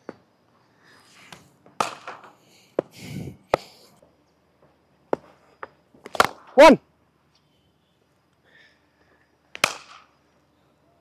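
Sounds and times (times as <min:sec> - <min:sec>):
ball hitting pitch: 0:01.7 - 0:02.9, 0:06.0 - 0:06.6, 0:09.6 - 0:10.1
cricket ball striking bat: 0:01.8 - 0:02.3, 0:06.0 - 0:06.6, 0:09.6 - 0:10.1.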